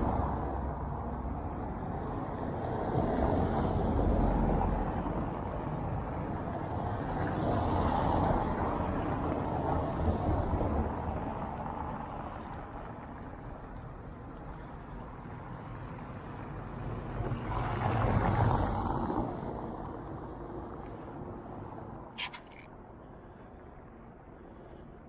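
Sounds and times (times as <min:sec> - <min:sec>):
cars passing on cobblestones: 0:00.0 - 0:25.0.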